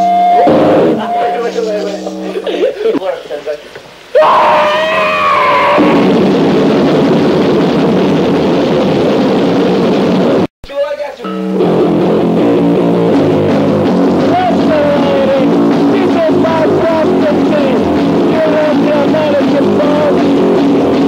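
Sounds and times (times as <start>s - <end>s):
guitar riff: 0.0s - 3.1s, 11.2s - 21.0s
distorted electric guitar: 0.0s - 10.5s, 11.3s - 21.0s.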